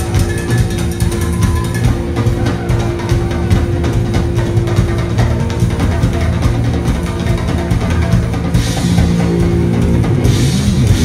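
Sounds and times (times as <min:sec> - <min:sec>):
funk band playing: 0:00.0 - 0:11.0
heavy bass: 0:00.0 - 0:11.0.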